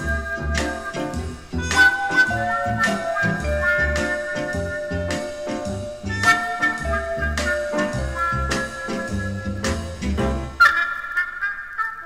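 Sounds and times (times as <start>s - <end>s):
held high notes ringing: 0.0s - 10.0s
lounge band music: 0.0s - 10.6s.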